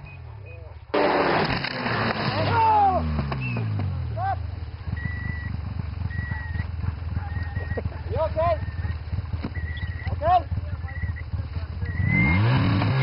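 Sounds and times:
snowmobile engine idling: 0:00.4 - 0:13.0.

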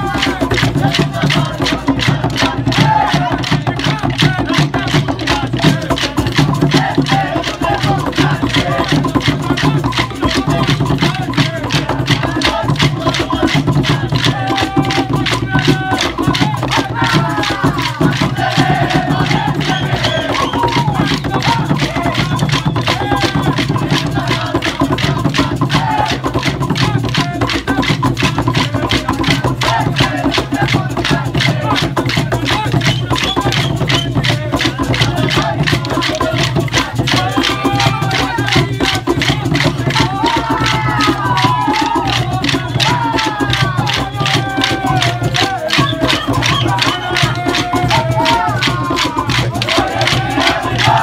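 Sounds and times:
group singing: 0:00.0 - 0:51.0
hand drums: 0:00.0 - 0:51.0
wooden sticks clacking: 0:43.9 - 0:51.0.

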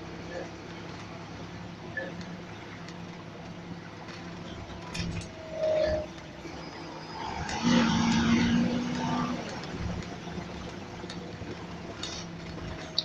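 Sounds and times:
bus engine running: 0:00.0 - 0:13.0.

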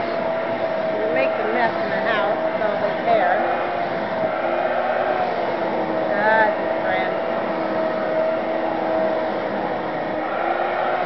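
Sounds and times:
vacuum cleaner motor whining: 0:00.0 - 0:11.0.

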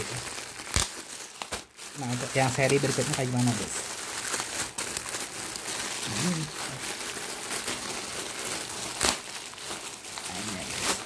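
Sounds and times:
plastic wrapping crinkling: 0:00.0 - 0:11.0
sharp loud plastic crackle: 0:00.0 - 0:11.0.

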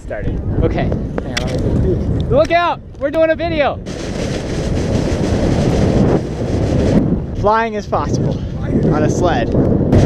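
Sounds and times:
plastic sled scraping over snow: 0:03.9 - 0:07.0.

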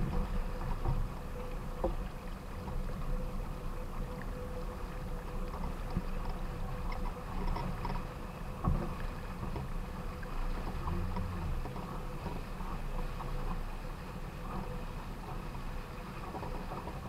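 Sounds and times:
water rushing along a hull: 0:00.0 - 0:17.0
wind rumble on microphone: 0:00.0 - 0:17.0.

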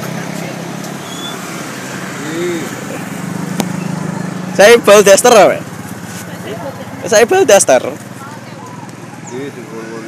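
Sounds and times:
faint voices: 0:02.0 - 0:10.0.

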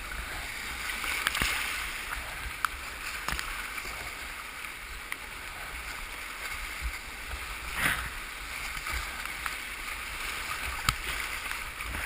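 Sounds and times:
rushing whitewater: 0:00.0 - 0:12.0.

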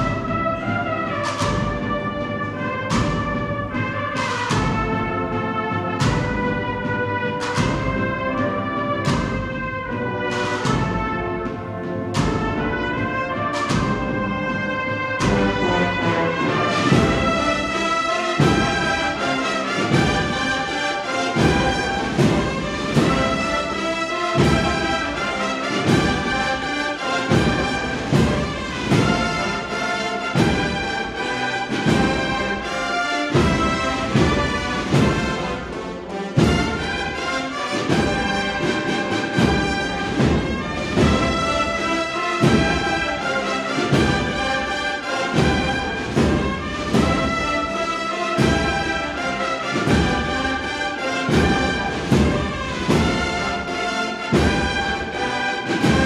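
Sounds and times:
brass band playing a march: 0:00.0 - 0:56.0
steady drum beat: 0:00.0 - 0:56.0.

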